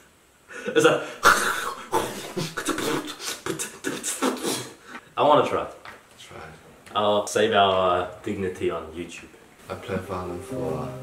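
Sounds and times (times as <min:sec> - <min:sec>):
man making choppy vocal sounds: 0:01.2 - 0:04.8.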